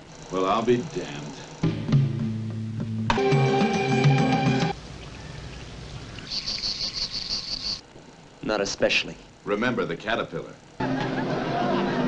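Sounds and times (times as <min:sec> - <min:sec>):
low outdoor hiss: 0:00.0 - 0:01.7, 0:04.7 - 0:12.0
insect chirring: 0:04.8 - 0:07.9.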